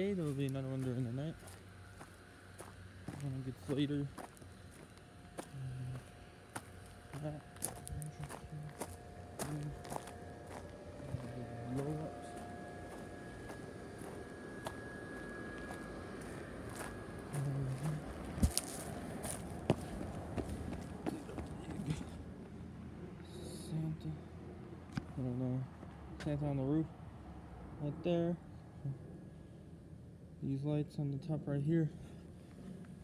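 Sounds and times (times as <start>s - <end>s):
faint steady hum: 0.0s - 33.0s
footsteps on dry grass: 0.1s - 21.6s
low voice sounds: 5.4s - 6.0s, 17.3s - 18.2s.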